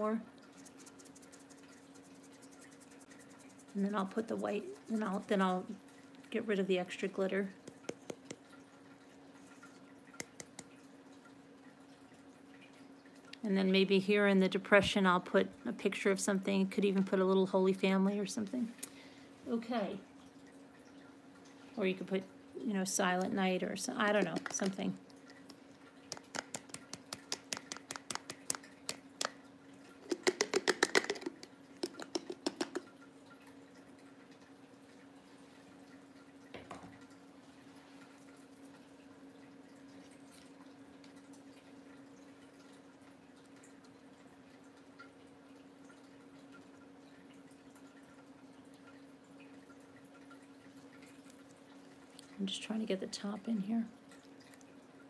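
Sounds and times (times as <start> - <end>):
plastic items clicking and rattling: 30.0 - 32.9.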